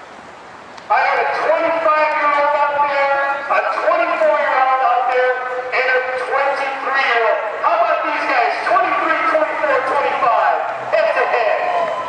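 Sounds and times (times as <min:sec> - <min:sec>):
spectators shouting and cheering: 0:08.9 - 0:12.0.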